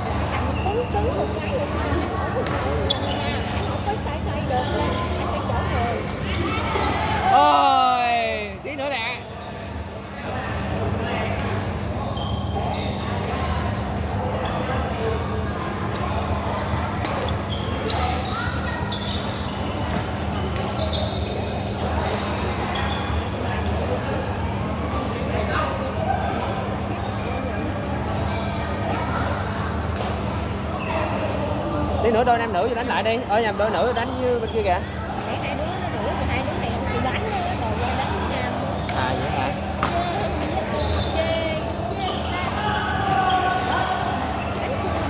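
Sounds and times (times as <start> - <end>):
shoe squeaks on court floor: 0.4 - 7.3, 11.6 - 13.3, 15.5 - 16.0, 17.1 - 23.4, 38.6 - 42.4, 43.0 - 45.0.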